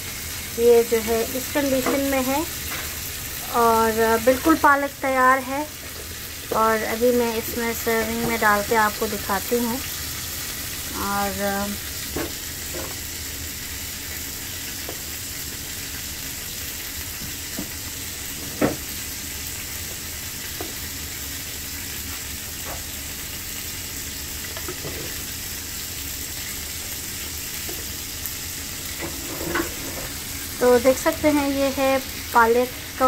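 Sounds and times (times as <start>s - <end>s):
spoon scraping pot and dish: 29.0s - 30.2s.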